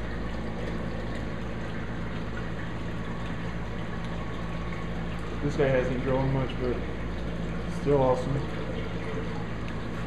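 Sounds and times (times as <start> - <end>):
electric pump hum: 0.0 - 10.0
rushing circulating water: 0.0 - 10.0.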